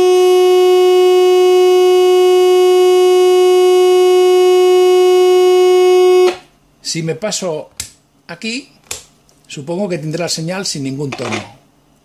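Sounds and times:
steady loud tone: 0.0 - 6.5.

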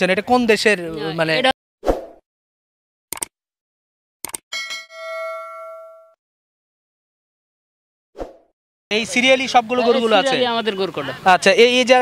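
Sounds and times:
short clicks: 3.1 - 3.3, 4.2 - 4.4
bright bell-like ding: 4.5 - 6.2.

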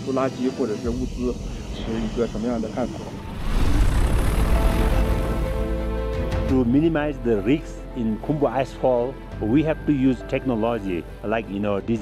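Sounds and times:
drone propellers rushing: 0.0 - 6.4.

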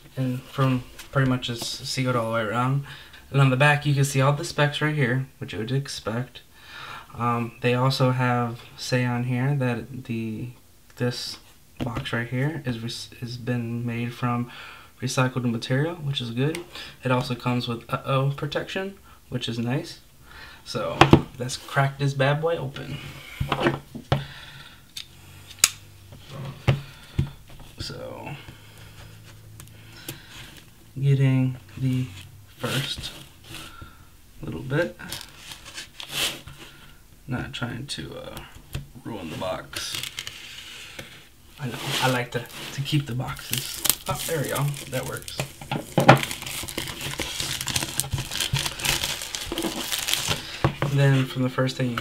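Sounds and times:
plastic shrink-wrap crinkling: 35.0 - 36.5, 39.7 - 40.5, 41.6 - 50.7.

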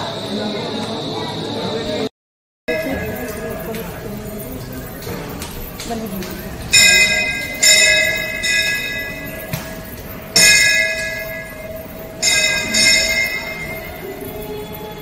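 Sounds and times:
metal temple bell ringing: 2.7 - 15.0.

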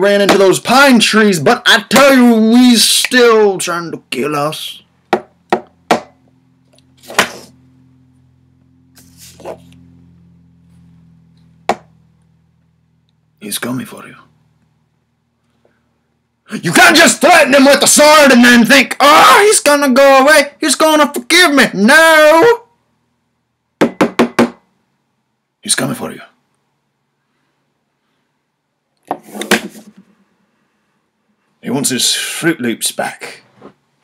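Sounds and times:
low electrical hum: 0.0 - 34.0.

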